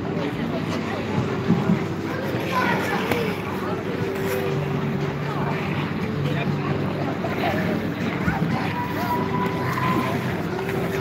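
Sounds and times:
voices of many skaters: 0:00.0 - 0:11.0.

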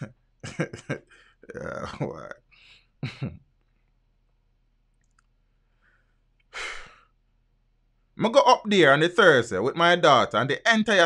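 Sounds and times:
man sighing: 0:01.1 - 0:02.9, 0:06.5 - 0:07.1.

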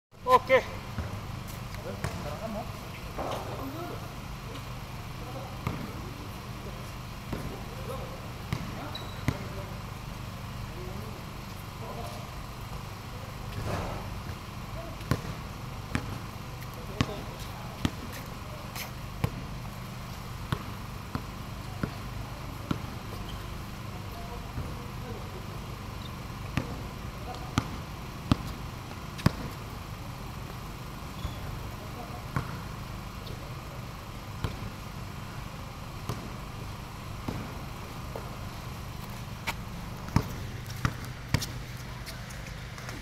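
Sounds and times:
steady low hum: 0:00.2 - 0:43.0
basketball bouncing on concrete: 0:01.0 - 0:01.2, 0:01.8 - 0:02.4, 0:03.2 - 0:03.9, 0:05.6 - 0:06.0, 0:08.5 - 0:09.6, 0:15.0 - 0:16.3, 0:16.9 - 0:18.2, 0:19.2 - 0:19.5, 0:20.5 - 0:22.0, 0:22.6 - 0:22.9, 0:26.4 - 0:28.6, 0:29.2 - 0:29.6, 0:32.3 - 0:32.7, 0:34.4 - 0:34.8, 0:36.1 - 0:36.3, 0:37.3 - 0:38.4, 0:39.0 - 0:43.0.

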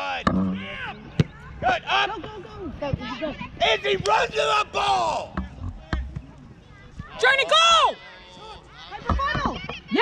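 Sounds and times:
people shouting outdoors: 0:00.0 - 0:05.6, 0:06.7 - 0:10.0.

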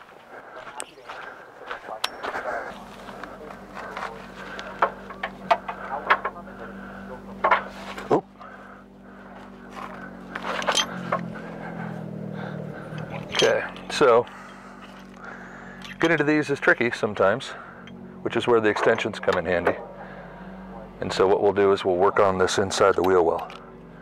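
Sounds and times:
footsteps: 0:00.0 - 0:06.4
steady low hum: 0:00.0 - 0:24.0
metal tools clicking and clinking: 0:02.0 - 0:02.4, 0:10.3 - 0:11.3, 0:12.9 - 0:15.2, 0:15.8 - 0:16.7.

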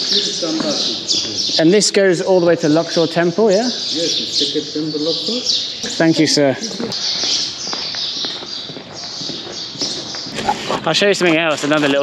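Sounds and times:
soft footsteps on stone: 0:00.0 - 0:01.7, 0:06.8 - 0:10.9
small birds chirping chorus: 0:00.0 - 0:12.0.

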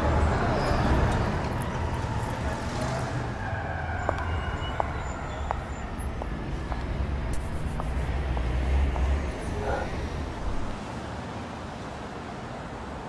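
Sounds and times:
traffic rumble: 0:00.0 - 0:13.0
distant siren wailing: 0:01.3 - 0:06.4.

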